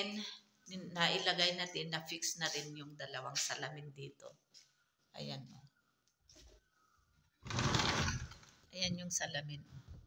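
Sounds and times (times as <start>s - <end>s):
sliding window rattling: 7.4s - 8.4s.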